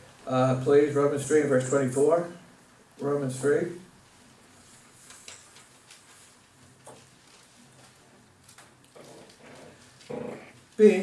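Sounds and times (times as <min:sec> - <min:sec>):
faint small noises: 0:00.0 - 0:11.0
man reading aloud: 0:00.1 - 0:04.0, 0:10.1 - 0:11.0.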